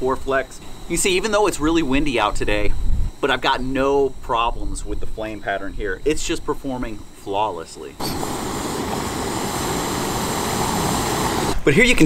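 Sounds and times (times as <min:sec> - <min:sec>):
stove burning with steady hiss: 0:00.0 - 0:12.0.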